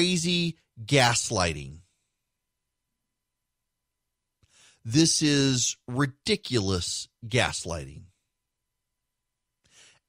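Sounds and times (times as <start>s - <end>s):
man speaking: 0.0s - 1.9s, 4.8s - 8.2s
faint breath in: 4.4s - 4.9s, 9.6s - 10.0s.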